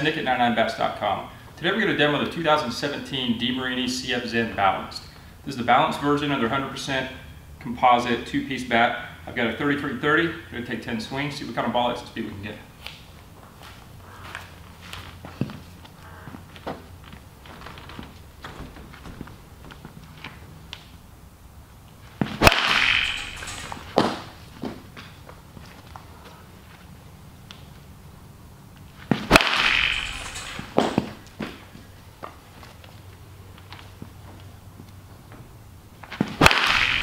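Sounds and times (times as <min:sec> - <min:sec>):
bat hitting baseball crack: 0:22.2 - 0:25.0, 0:29.0 - 0:31.7, 0:36.1 - 0:37.0.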